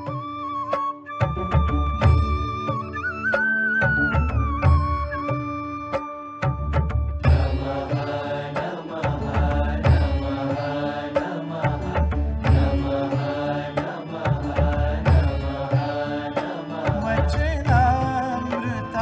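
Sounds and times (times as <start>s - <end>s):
steady drum beat: 6.8s - 18.7s
devotional chanting: 7.2s - 19.0s.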